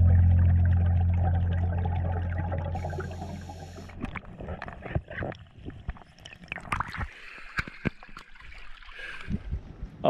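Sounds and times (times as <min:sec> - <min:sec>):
low steady hum: 0:00.0 - 0:04.1
underwater water noise: 0:00.0 - 0:09.8.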